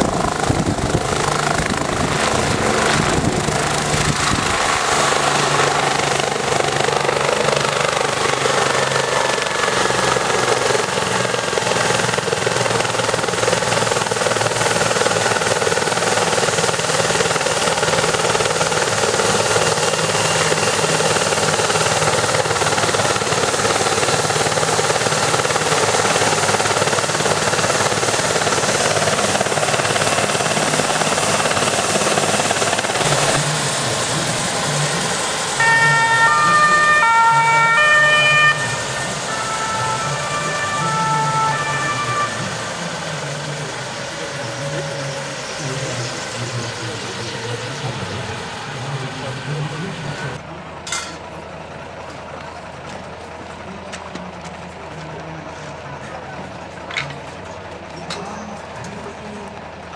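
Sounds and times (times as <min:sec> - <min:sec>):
helicopter turbine and rotor: 0:00.0 - 0:59.9
two-tone siren: 0:35.6 - 0:43.8.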